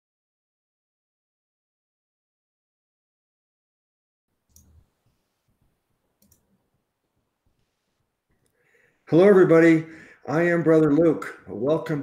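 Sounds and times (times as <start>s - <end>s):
soft clicks: 4.5s - 6.6s.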